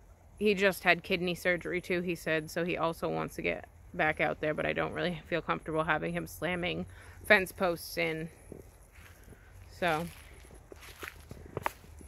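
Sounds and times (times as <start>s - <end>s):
low steady rumble: 0.0s - 12.0s
footsteps and scuffs outdoors: 7.1s - 12.0s.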